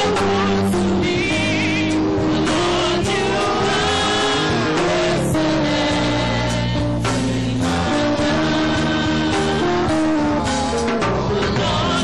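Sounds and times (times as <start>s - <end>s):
instruments playing worship music: 0.0s - 12.0s
voices singing along: 0.0s - 12.0s.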